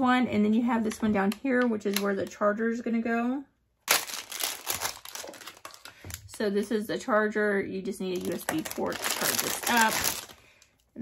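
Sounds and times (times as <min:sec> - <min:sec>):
plastic bag crinkling: 0:03.8 - 0:06.5, 0:08.0 - 0:10.8.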